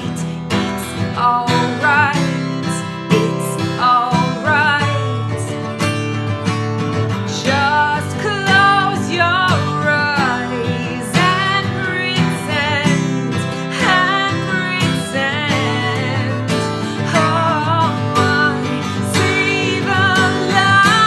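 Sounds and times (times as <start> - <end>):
woman singing with vibrato: 0.0 - 5.7, 7.2 - 21.0
strummed acoustic guitar: 0.0 - 21.0.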